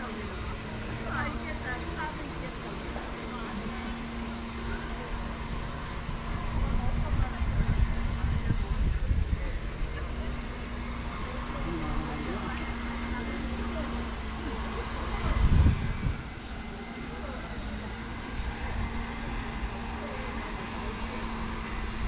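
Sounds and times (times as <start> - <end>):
faint voices: 0.0 - 22.0
low rumble on microphone: 14.6 - 16.8.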